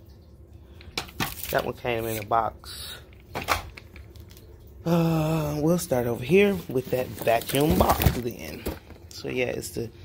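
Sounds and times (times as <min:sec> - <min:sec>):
knocks and rustles of handling: 0:00.8 - 0:02.4, 0:06.3 - 0:09.2.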